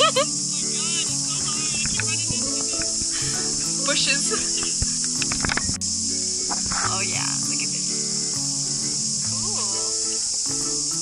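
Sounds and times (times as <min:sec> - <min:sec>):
background music: 0:00.0 - 0:11.0
high-pitched insect chorus: 0:00.0 - 0:11.0
sharp clicks: 0:04.4 - 0:05.8.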